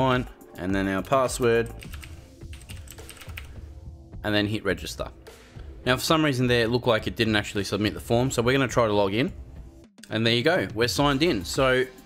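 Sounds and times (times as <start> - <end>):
quiet background music: 0.0 - 12.0
computer keyboard typing: 1.0 - 3.6.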